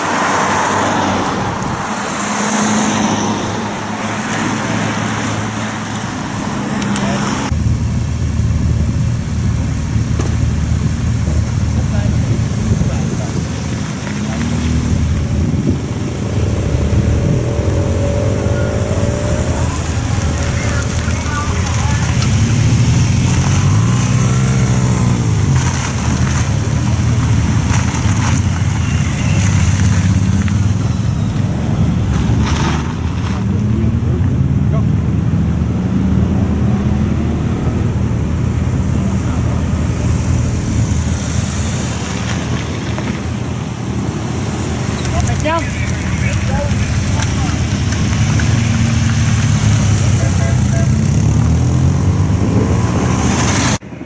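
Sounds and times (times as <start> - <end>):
cars passing by: 0.0 - 54.0
motorcycles passing by: 0.0 - 54.0
road noise: 0.0 - 54.0.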